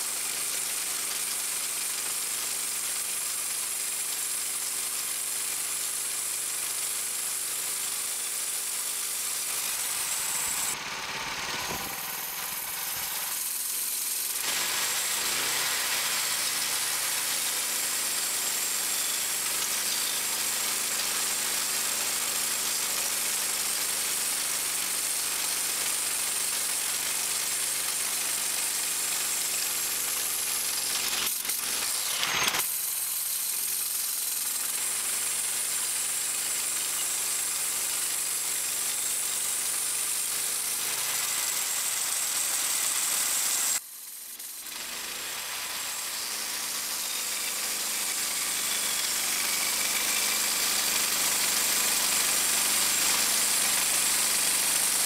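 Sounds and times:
bandsaw blade sawing log: 0:00.0 - 0:55.0
gas engine running: 0:06.2 - 0:37.5.

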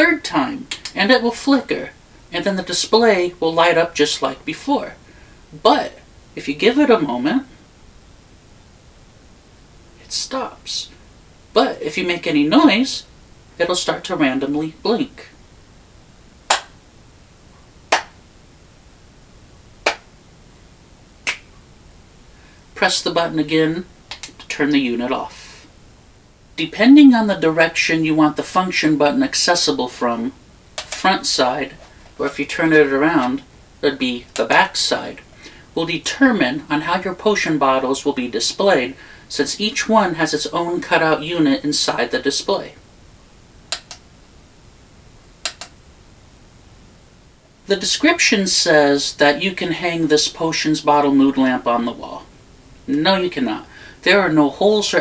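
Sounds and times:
hand claps: 0:16.5 - 0:16.8, 0:17.9 - 0:18.2, 0:19.8 - 0:20.1, 0:21.3 - 0:21.5.

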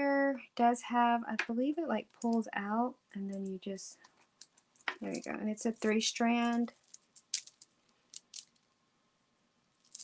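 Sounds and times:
necklace beads clicking: 0:03.3 - 0:03.6, 0:04.4 - 0:08.7, 0:09.8 - 0:10.0.

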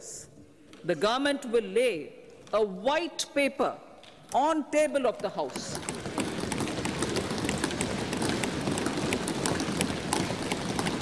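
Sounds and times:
desk thumping applause: 0:05.8 - 0:11.0.

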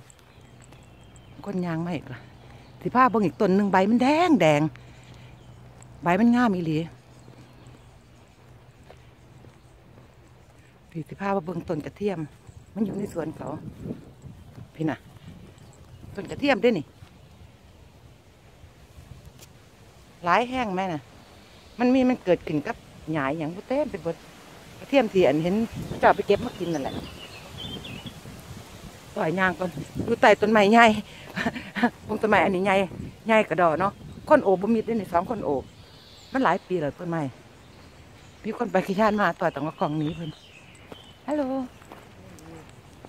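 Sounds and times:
low outdoor rumble: 0:00.0 - 0:24.0
footsteps on park path: 0:00.0 - 0:43.0.

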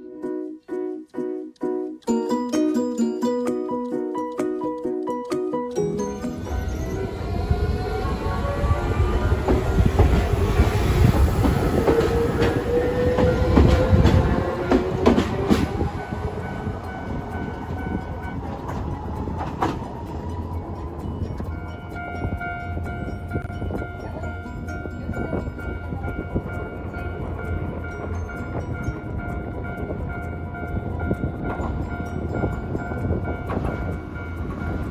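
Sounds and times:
tram rumble and motor whine: 0:05.7 - 0:34.9
wheels clicking over rail joints: 0:08.8 - 0:34.9.

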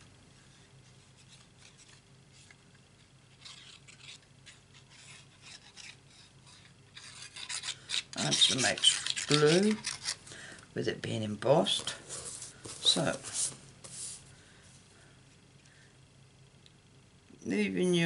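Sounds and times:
glue nib scratching on card: 0:03.4 - 0:10.2.

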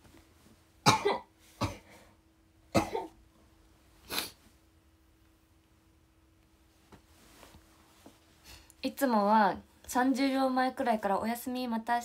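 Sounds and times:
woman coughing: 0:00.8 - 0:01.9, 0:02.7 - 0:03.2.

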